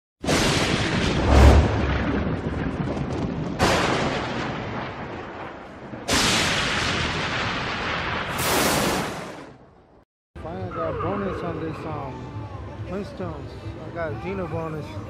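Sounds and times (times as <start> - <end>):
thunder crashes and booms: 0.2 - 9.6.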